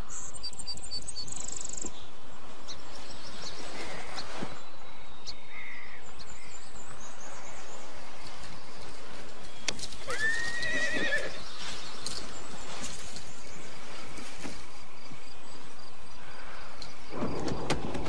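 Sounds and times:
horse whinnying: 10.0 - 11.4.

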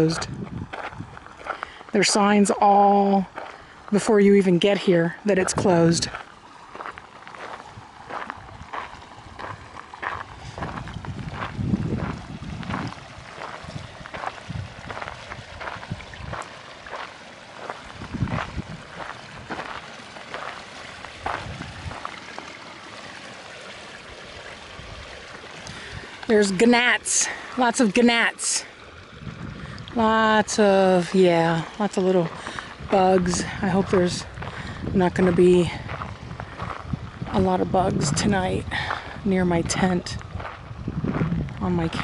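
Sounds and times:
footsteps on gravel: 0.0 - 2.3, 3.0 - 4.1, 5.4 - 23.2, 30.7 - 42.0
wind rumbling on microphone: 0.0 - 4.0, 4.6 - 22.4, 24.1 - 27.4, 29.0 - 42.0.

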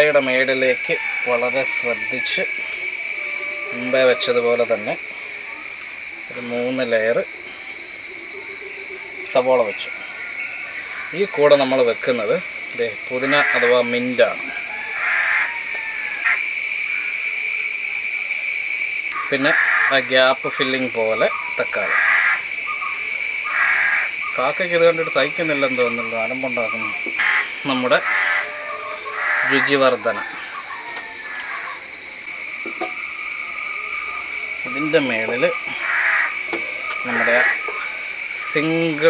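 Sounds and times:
shrill insect drone: 0.0 - 39.0.

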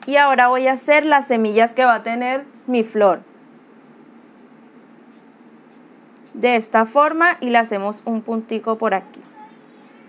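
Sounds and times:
marker moving over paper: 4.2 - 6.6.

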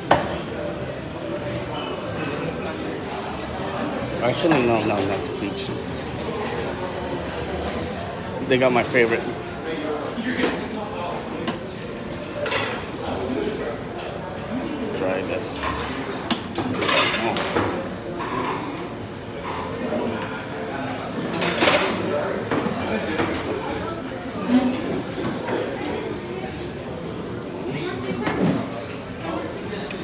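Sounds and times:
clatter of dishes and utensils: 4.2 - 5.3, 12.3 - 13.0, 15.4 - 19.9, 21.2 - 23.4.

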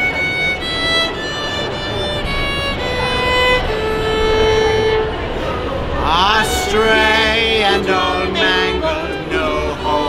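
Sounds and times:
violins playing slow melody: 0.0 - 10.0.

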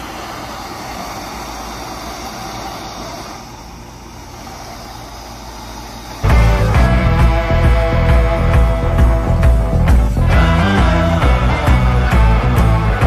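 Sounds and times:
low hum: 0.0 - 13.0
steady rushing noise: 0.0 - 13.0
loud background music: 6.2 - 13.0.

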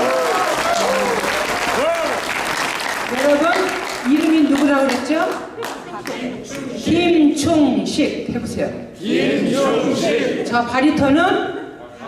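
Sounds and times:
hands clapping in applause: 0.0 - 6.7.

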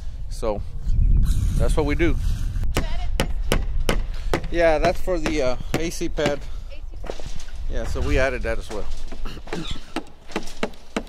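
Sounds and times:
wind rumble on microphone: 0.0 - 9.4
hammer blows: 2.7 - 11.0.

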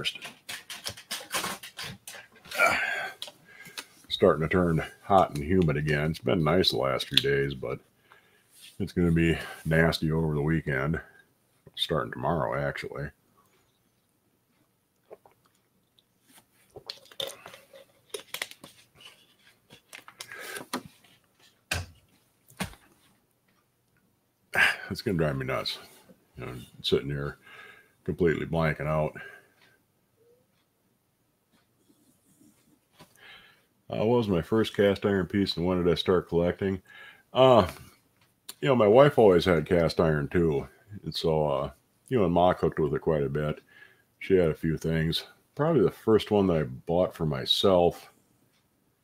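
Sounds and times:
plastic bottles crinkling: 0.0 - 3.9, 16.6 - 21.8.

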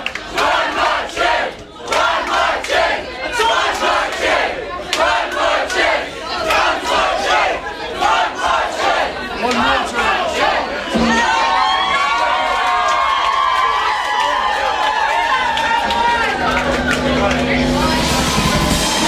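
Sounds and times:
hands clapping: 0.0 - 3.0, 3.9 - 6.8, 12.5 - 18.1
crowd cheering and shouting: 0.0 - 19.0.

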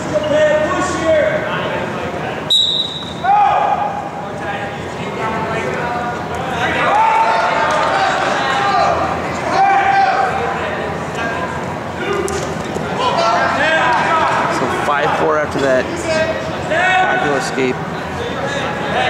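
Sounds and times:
indistinct shouting in a gymnasium: 2.5 - 4.3, 6.4 - 15.2, 16.0 - 17.2.

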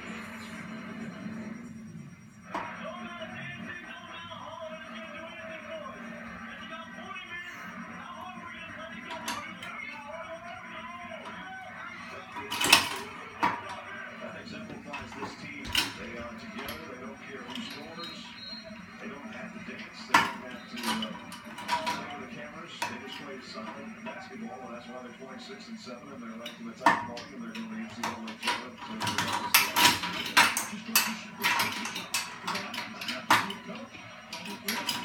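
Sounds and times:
television music: 0.0 - 35.0
television speech: 0.0 - 35.0.

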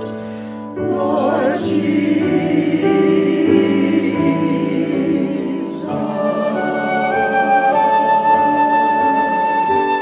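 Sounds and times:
piano: 0.0 - 10.0
choir singing held chords: 0.8 - 9.2
flute: 5.6 - 10.0.

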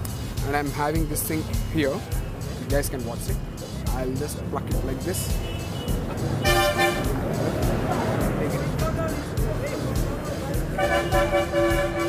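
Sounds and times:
background music: 0.0 - 12.0
traffic rumble: 0.0 - 12.0
crowd talking: 0.6 - 12.0.

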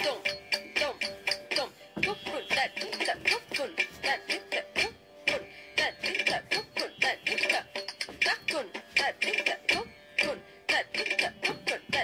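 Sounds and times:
person singing ornamented phrases: 0.0 - 12.0.

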